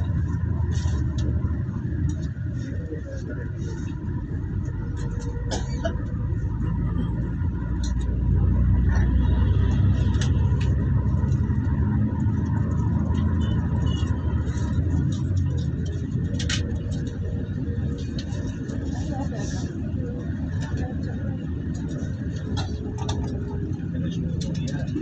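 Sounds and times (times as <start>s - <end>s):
vehicle engine and road rumble: 0.0s - 25.0s.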